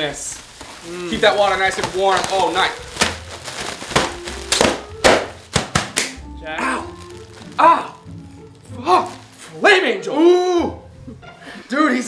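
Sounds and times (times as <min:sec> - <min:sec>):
air pillows popping: 0:00.6 - 0:06.2.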